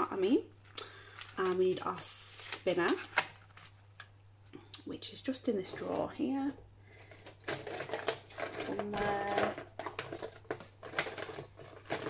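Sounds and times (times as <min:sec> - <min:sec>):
plastic pockets rustling: 0:00.6 - 0:04.1, 0:07.0 - 0:12.0
binder pages turning: 0:07.0 - 0:12.0.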